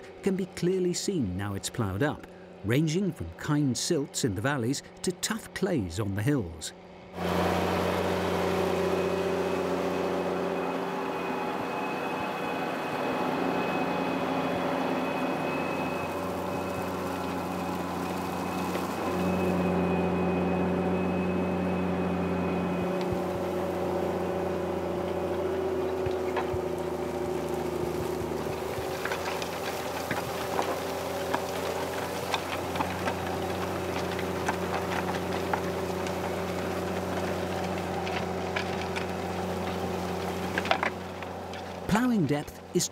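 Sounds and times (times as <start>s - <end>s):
tractor engine under load: 7.2s - 42.9s
faint high whine: 8.9s - 24.2s
soil and stubble crackling: 13.3s - 42.9s.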